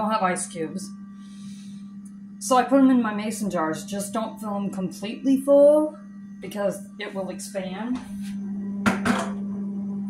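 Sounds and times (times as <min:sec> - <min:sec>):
refrigerator low hum: 0:00.0 - 0:10.0.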